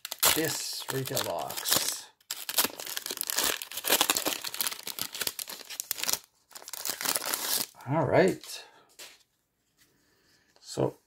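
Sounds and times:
wrapper crinkling and tearing: 0.0 - 7.8.

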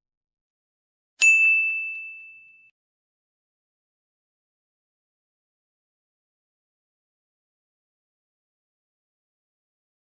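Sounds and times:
bright bell-like ding: 1.2 - 2.8.

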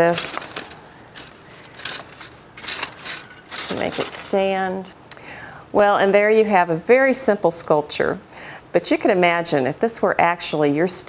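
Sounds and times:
thin metal sheet crinkling: 0.0 - 4.9.

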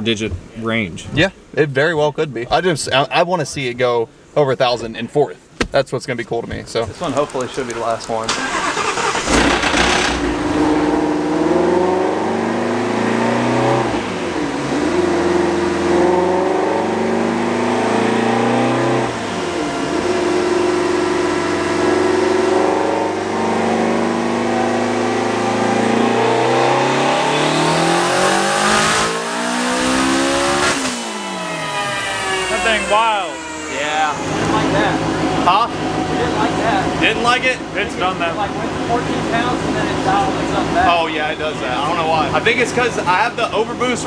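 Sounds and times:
car engine revving on a dyno: 8.4 - 43.9.

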